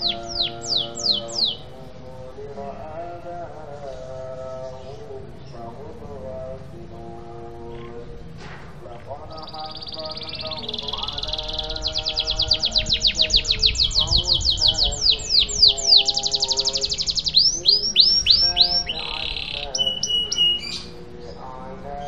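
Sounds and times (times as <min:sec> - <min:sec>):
canary singing: 0:00.0 - 0:22.0.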